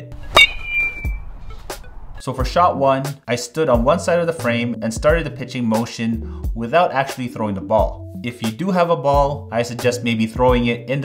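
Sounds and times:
background music: 0.0s - 11.0s
high ringing tone: 0.2s - 1.4s.

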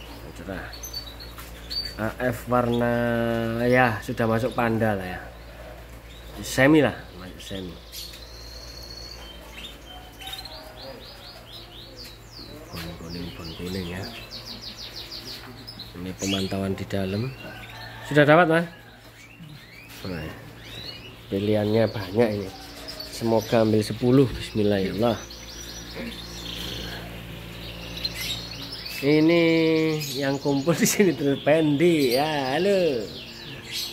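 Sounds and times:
canaries chirping and trilling: 0.0s - 33.9s
low steady hum: 0.0s - 33.9s.

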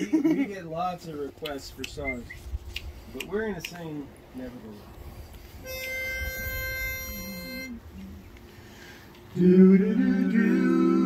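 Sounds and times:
pitch pipe note: 5.6s - 7.8s.

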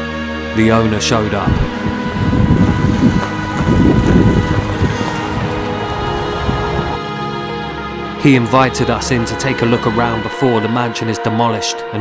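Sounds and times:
background music: 0.0s - 12.0s
tyres crunching over gravel: 1.3s - 7.0s.

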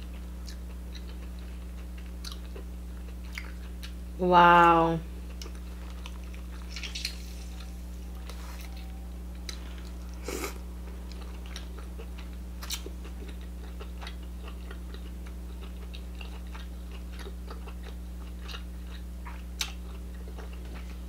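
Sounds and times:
low electrical hum: 0.0s - 21.0s
wet chewing: 0.4s - 4.0s, 5.3s - 21.0s.

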